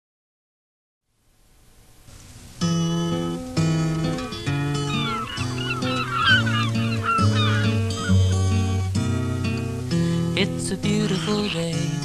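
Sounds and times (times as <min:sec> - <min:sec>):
acoustic guitar music: 0:02.0 - 0:12.0
waterbirds calling: 0:03.7 - 0:09.4.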